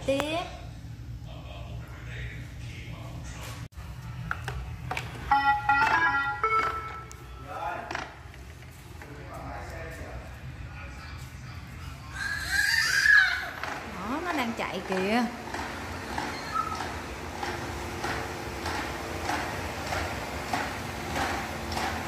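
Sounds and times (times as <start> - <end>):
robot vacuum start-up chime: 5.3 - 7.1.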